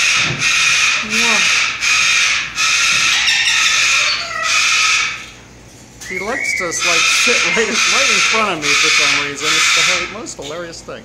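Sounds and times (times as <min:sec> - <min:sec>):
corella screeching: 0:06.0 - 0:10.3.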